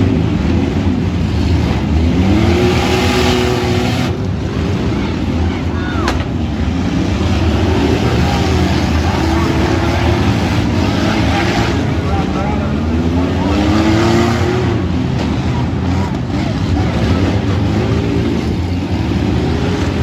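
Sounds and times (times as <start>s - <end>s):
car engines revving: 0.0s - 20.0s.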